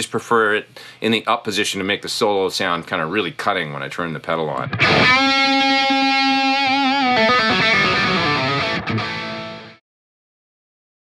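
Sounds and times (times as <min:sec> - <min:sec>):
distorted electric guitar note: 0:04.6 - 0:09.8.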